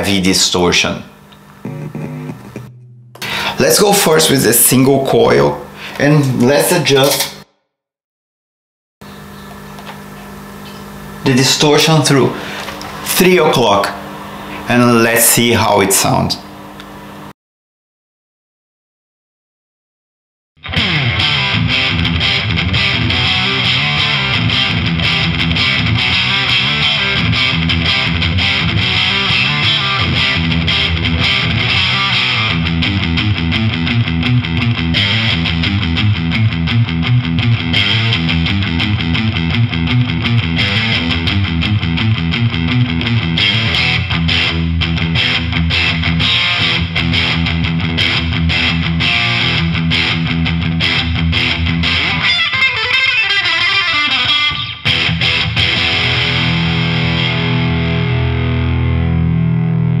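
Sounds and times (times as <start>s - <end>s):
heavily distorted electric guitar riffing: 1.5s - 6.0s, 20.7s - 60.0s.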